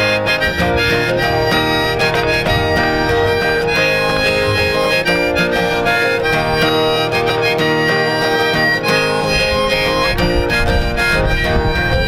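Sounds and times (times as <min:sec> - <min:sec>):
harmonica holding long notes: 0:00.0 - 0:12.0
strummed acoustic guitar: 0:00.0 - 0:12.0.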